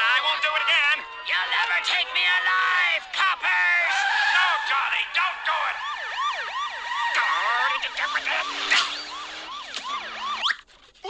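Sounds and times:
cartoon police sirens yelping: 0.0s - 10.6s.

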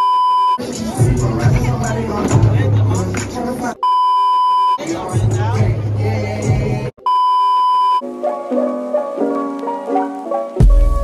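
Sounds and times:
rink music: 0.5s - 3.8s, 4.7s - 7.0s, 8.0s - 11.0s
electronic beep tone: 3.8s - 4.8s, 7.0s - 8.0s.

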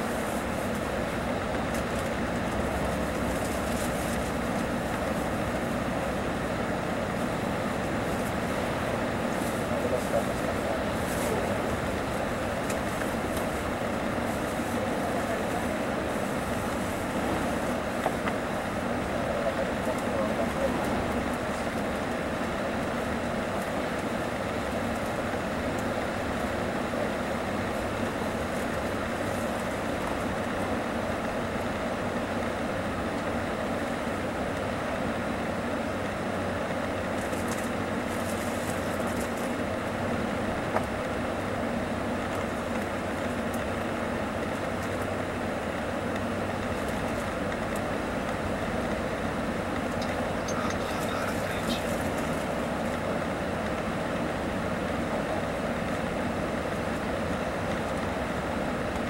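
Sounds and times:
road and wind noise in bus cabin: 0.0s - 59.0s.

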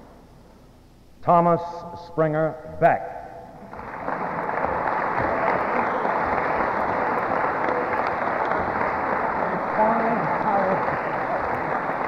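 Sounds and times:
audience applauding: 3.6s - 12.0s.

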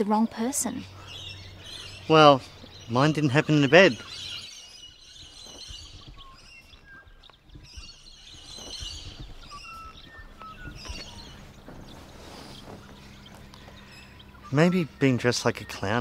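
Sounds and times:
low background rumble: 0.0s - 16.0s
small birds chirping: 0.0s - 16.0s.

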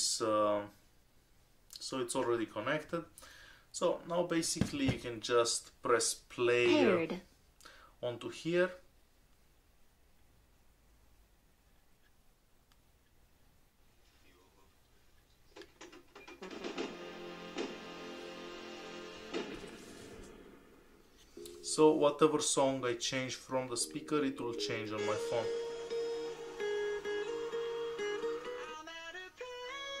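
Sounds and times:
music from portable speaker: 16.4s - 20.1s, 23.8s - 30.0s
plucked notes: 23.6s - 28.8s.

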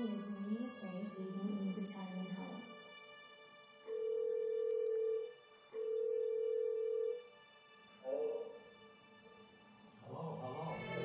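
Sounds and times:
video call ringing beeps: 3.9s - 7.3s.

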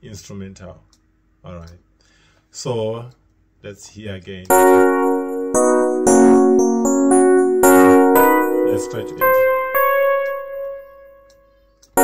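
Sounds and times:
electric piano note ringing: 4.5s - 12.0s.

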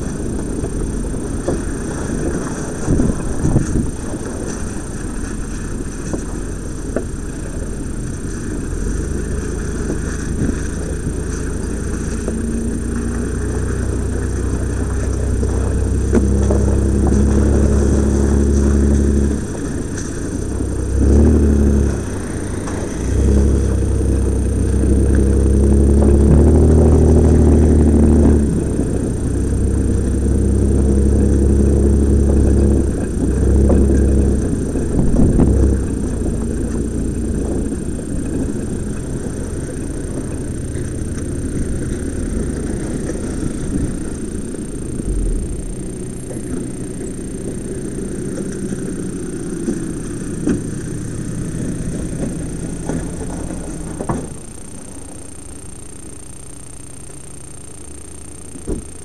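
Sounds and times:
engine running under load: 0.0s - 59.0s
vehicle jolts: 0.0s - 59.0s.

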